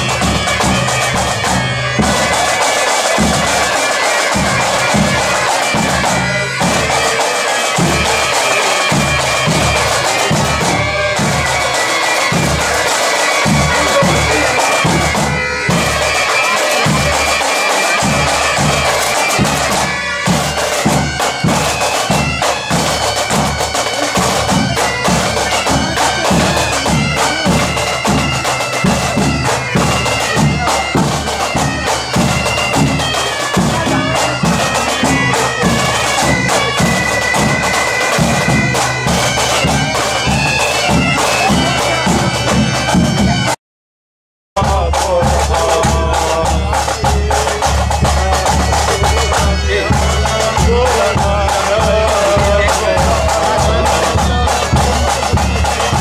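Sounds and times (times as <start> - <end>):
bagpipe melody over drone: 0.0 - 43.6, 44.6 - 56.0
drumbeat: 0.0 - 43.6, 44.6 - 56.0.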